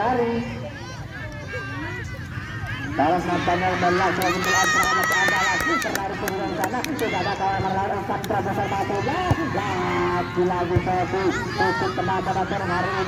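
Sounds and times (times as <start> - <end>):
spectators shouting: 0.0 - 13.0
high held shout: 0.7 - 7.4.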